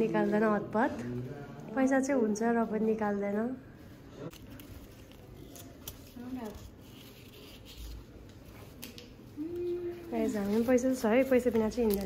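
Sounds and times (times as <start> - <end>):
paper banknote rustling: 4.3 - 9.2, 10.2 - 12.0.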